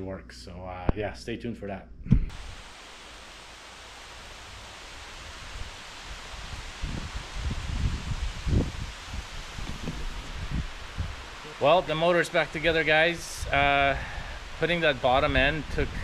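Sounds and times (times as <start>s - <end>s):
wind rustling through trees: 2.3s - 16.0s
wind gusts rumbling on microphone: 4.1s - 16.0s.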